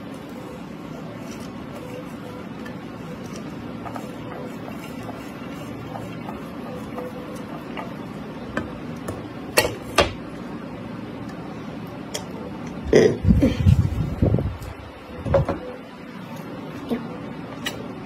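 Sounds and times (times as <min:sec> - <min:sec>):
steady background hum: 0:00.0 - 0:18.0.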